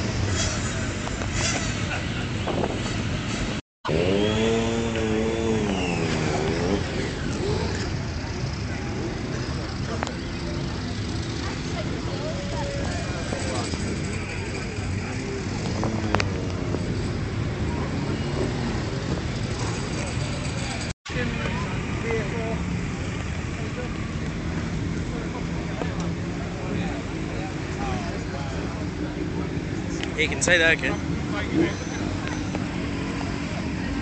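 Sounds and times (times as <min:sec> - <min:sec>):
motorcycle engines: 0:00.0 - 0:34.0
motorcycle passing close: 0:02.5 - 0:23.0
crowd chatter: 0:04.2 - 0:34.0.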